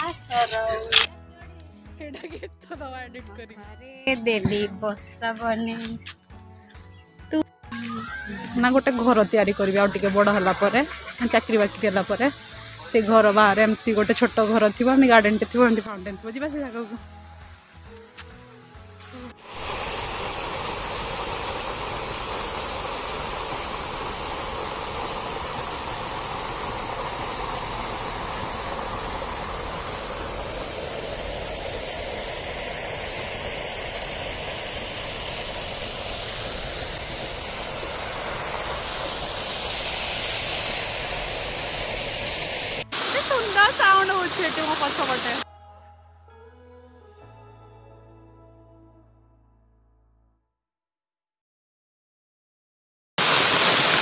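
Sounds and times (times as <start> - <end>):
person speaking: 4.0 - 6.0
fountain water splashing into pond: 7.8 - 17.8, 19.1 - 45.4, 53.2 - 54.0.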